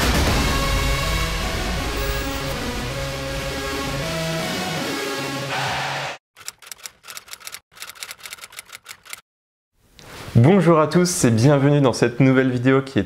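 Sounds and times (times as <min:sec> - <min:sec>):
music: 0:00.0 - 0:05.8
typewriter keystrokes: 0:06.4 - 0:09.2.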